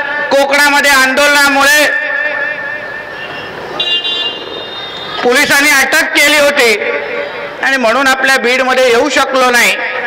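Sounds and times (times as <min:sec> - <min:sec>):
amplified speech: 0:00.0 - 0:02.8, 0:05.1 - 0:10.0.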